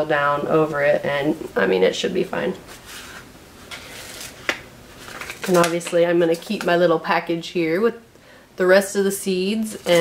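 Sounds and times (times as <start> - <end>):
plastic tray rustling: 2.6 - 5.9, 9.7 - 10.0.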